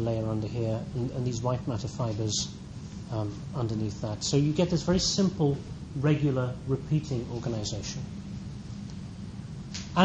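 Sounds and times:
low background hum with hiss: 0:00.0 - 0:10.0.

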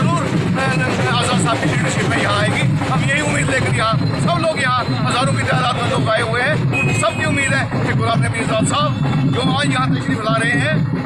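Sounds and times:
man talking: 0:00.0 - 0:10.8
street background noise: 0:00.0 - 0:11.0.

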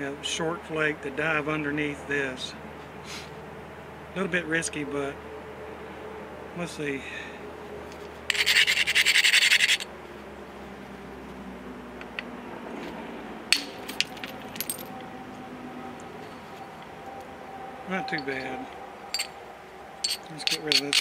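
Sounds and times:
stone scraping on stone: 0:08.3 - 0:09.9, 0:20.0 - 0:21.0.

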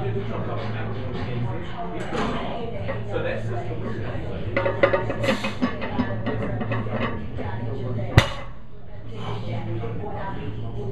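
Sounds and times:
metal plates clinking: 0:04.5 - 0:07.4.

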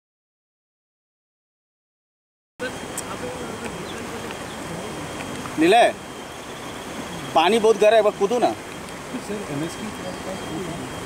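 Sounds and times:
steady outdoor hiss: 0:02.6 - 0:11.0
faint chirps and ticks: 0:02.9 - 0:07.3.

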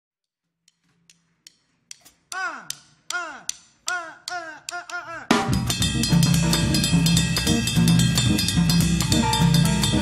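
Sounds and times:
drum kit clicks: 0:00.6 - 0:10.0.

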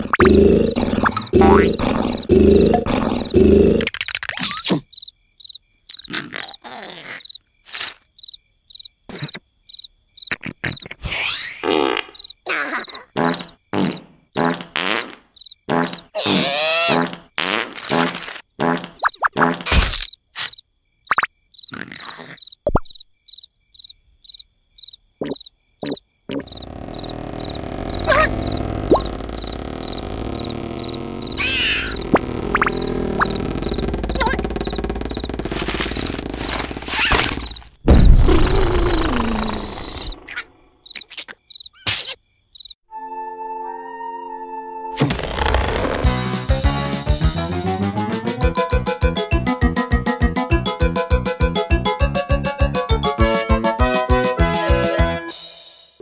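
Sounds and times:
cartoon squeaks and buzzes: 0:00.0 - 0:04.9, 0:10.3 - 0:15.1, 0:15.7 - 0:20.6, 0:25.2 - 0:42.2, 0:45.0 - 0:46.2
high cricket chirping: 0:00.1 - 0:11.0, 0:11.6 - 0:14.4, 0:15.2 - 0:16.2, 0:20.0 - 0:42.8.

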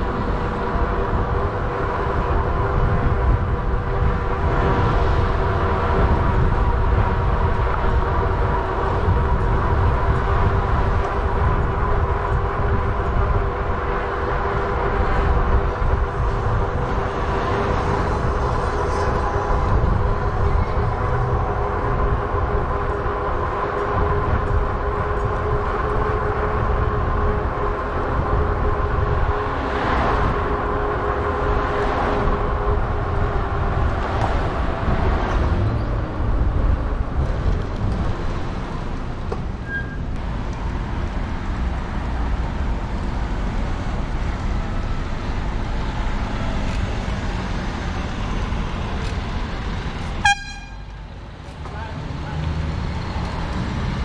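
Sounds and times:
wind rumbling on microphone: 0:00.0 - 0:54.0.

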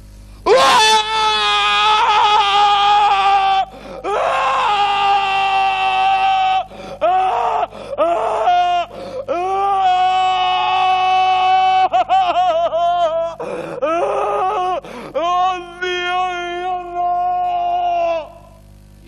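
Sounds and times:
man screaming: 0:00.5 - 0:18.6.

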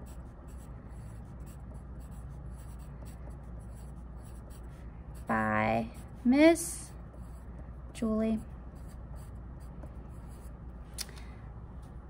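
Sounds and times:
pencil scratching on paper: 0:00.0 - 0:07.9, 0:08.7 - 0:10.5
small sharp click: 0:11.0 - 0:11.2.

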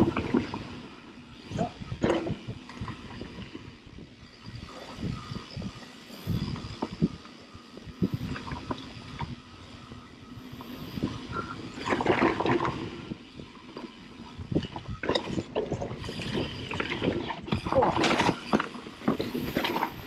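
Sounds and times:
bike tyres rolling over dirt and leaves: 0:06.4 - 0:20.0.

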